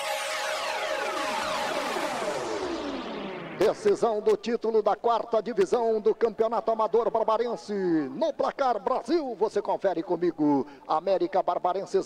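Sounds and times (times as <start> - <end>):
synthesizer sweeps gliding down: 0.0 - 7.3.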